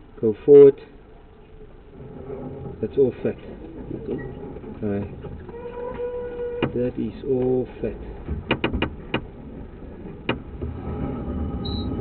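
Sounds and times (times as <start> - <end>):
faint electrical hum: 0.0 - 12.0
low steady rumble: 0.0 - 12.0
sharp clicks and knocks: 1.9 - 7.6, 8.2 - 12.0.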